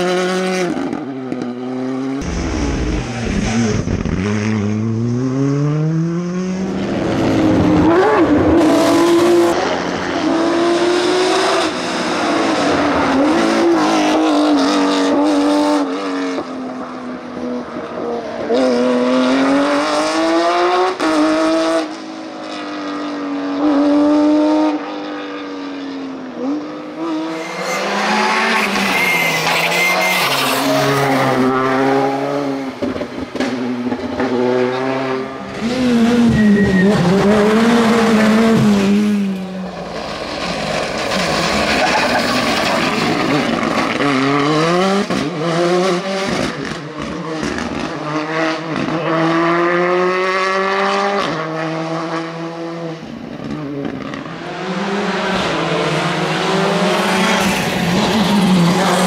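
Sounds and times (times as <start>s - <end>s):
rally car engines revving: 0.0s - 59.0s.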